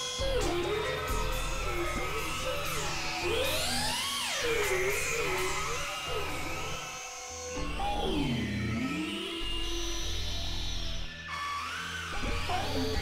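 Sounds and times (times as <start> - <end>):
experimental electronic synthesizer music: 0.0 - 6.8.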